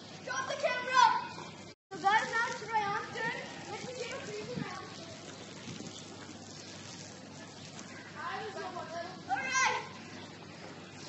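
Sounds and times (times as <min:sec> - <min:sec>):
child yelling: 0:00.2 - 0:01.4, 0:09.3 - 0:10.0.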